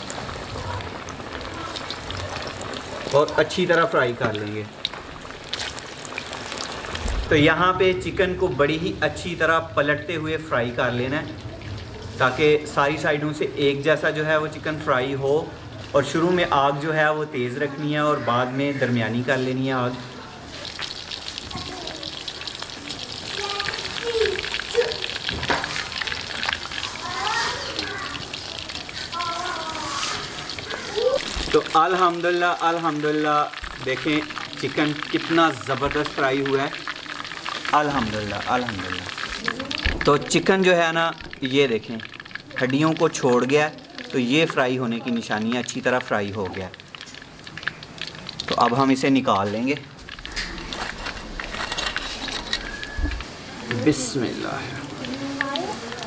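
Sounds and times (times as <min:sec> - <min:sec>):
chicken sizzling in hot oil: 0:00.0 - 0:56.0.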